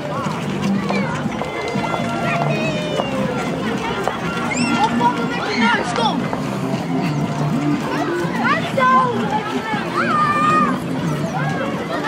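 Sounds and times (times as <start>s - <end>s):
children and adults chattering: 0.0s - 12.0s
steady background noise: 0.0s - 12.0s.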